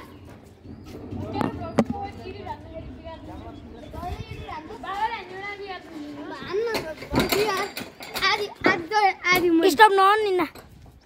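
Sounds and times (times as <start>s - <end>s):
child talking and calling out: 4.0s - 10.6s.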